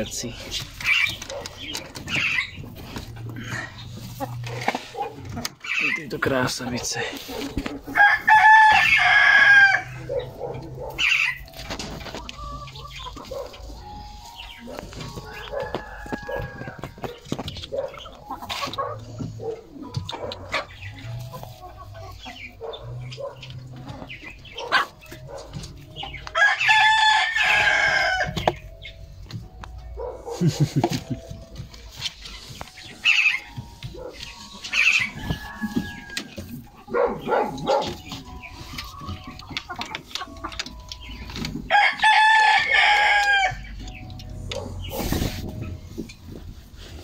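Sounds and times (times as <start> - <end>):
chicken clucking: 0.0 - 47.0
rooster crowing: 8.0 - 10.0, 15.2 - 16.9, 26.4 - 28.4, 41.7 - 43.6.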